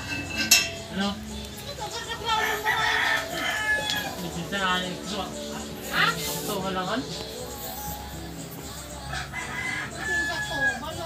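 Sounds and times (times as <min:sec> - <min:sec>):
rooster crowing: 0:02.3 - 0:04.3, 0:09.0 - 0:11.0.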